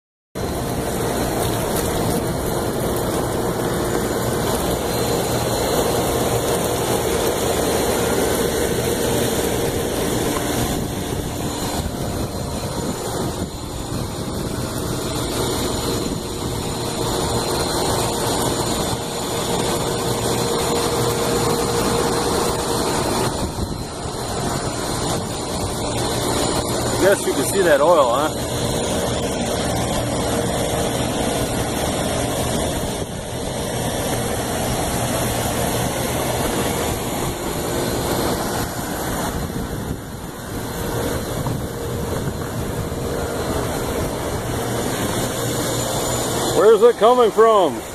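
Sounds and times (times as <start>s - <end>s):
fan drone: 0.4s - 47.9s
low hum: 0.4s - 47.9s.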